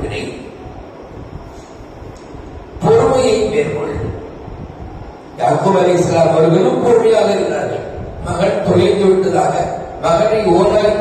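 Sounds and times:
low background noise: 0:00.0 - 0:11.0
man talking over headset: 0:02.8 - 0:04.2, 0:05.4 - 0:11.0.

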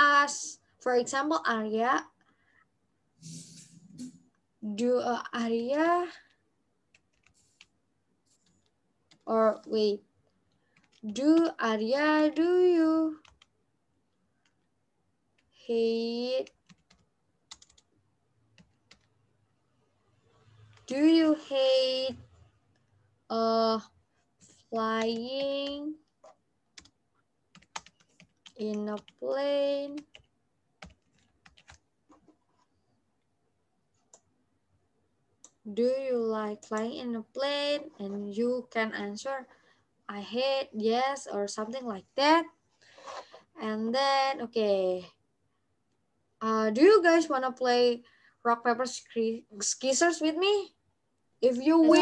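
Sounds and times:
faint keyboard typing: 0:05.4 - 0:14.7, 0:15.3 - 0:19.2, 0:20.4 - 0:34.4, 0:35.4 - 0:38.4
typing on computer keyboard: 0:05.7 - 0:07.7, 0:08.4 - 0:09.8, 0:10.5 - 0:11.6, 0:13.1 - 0:13.5, 0:16.4 - 0:17.9, 0:18.5 - 0:19.2, 0:24.8 - 0:31.9
keyboard keystrokes: 0:29.9 - 0:31.8.

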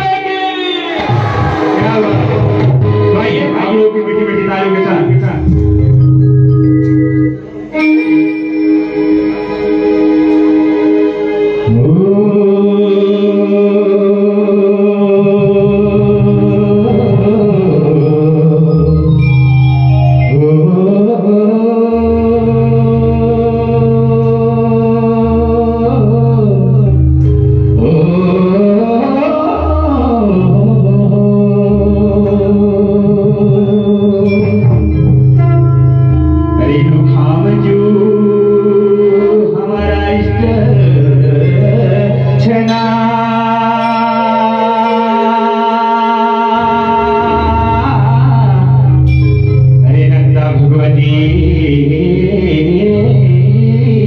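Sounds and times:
man singing long note: 0:00.0 - 0:05.7, 0:11.6 - 0:19.3, 0:20.2 - 0:54.0
folk music over loudspeakers: 0:00.0 - 0:54.0.

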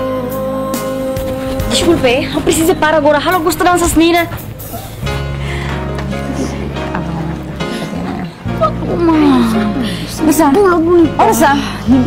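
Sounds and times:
band music playing: 0:00.0 - 0:11.4.

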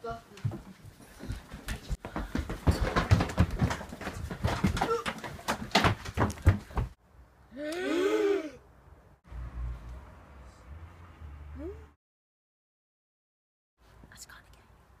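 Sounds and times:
scuffling: 0:00.3 - 0:07.0
rapid irregular knocking: 0:02.0 - 0:07.0.

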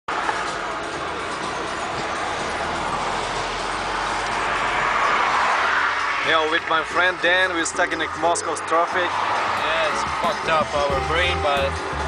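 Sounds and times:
road noise: 0:00.0 - 0:12.0.

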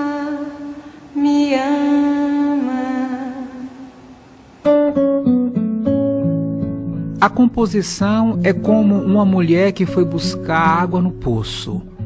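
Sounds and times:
woman singing unaccompanied: 0:00.0 - 0:04.1.

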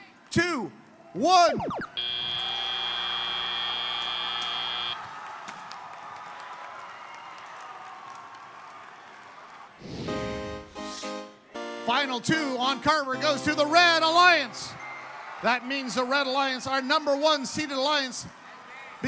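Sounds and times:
arena crowd noise: 0:00.0 - 0:09.9, 0:12.8 - 0:19.0
buzzer steady tone: 0:01.9 - 0:05.0
music: 0:09.9 - 0:15.0.

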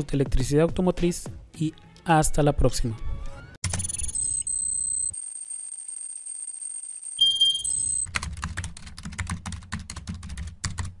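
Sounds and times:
high electronic chime: 0:03.8 - 0:08.1.

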